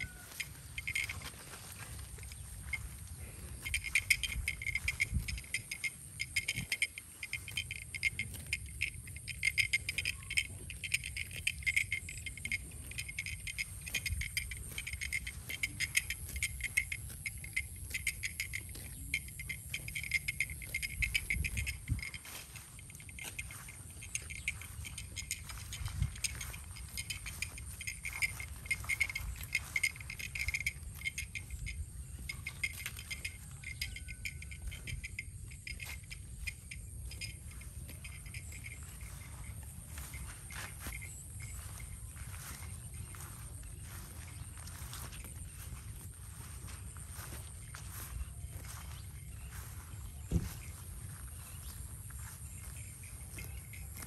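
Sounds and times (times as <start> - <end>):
insects chirring: 0.0 - 54.0.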